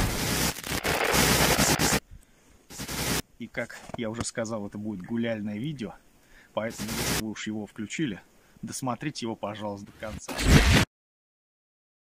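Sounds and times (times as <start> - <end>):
short noisy burst: 0.0 - 2.0, 2.7 - 3.2, 6.7 - 7.2
loud dense crackling noise: 0.0 - 2.1, 2.7 - 3.2, 6.6 - 7.4.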